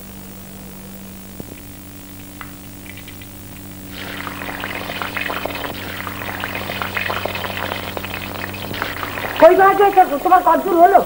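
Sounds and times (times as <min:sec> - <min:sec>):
steady low hum: 0:00.0 - 0:11.0
deep-frying sizzle in hot oil: 0:03.9 - 0:10.5.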